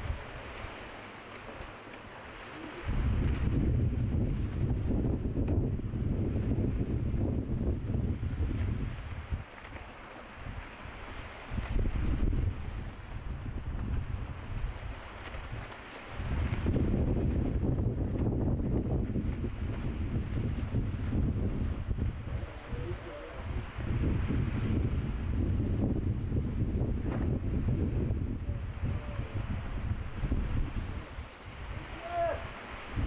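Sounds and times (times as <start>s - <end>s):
wind buffeting microphone: 0.0s - 0.8s, 2.4s - 33.0s.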